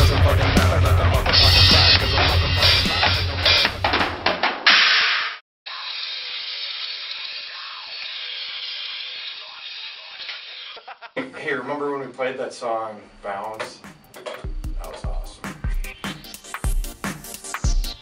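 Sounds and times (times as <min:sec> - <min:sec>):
heavy metal band playing: 0:00.0 - 0:04.1.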